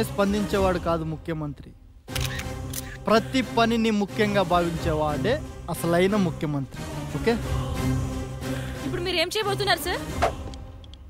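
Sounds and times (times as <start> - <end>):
background music with low held notes: 0.0 - 11.0
man speaking: 2.9 - 7.6.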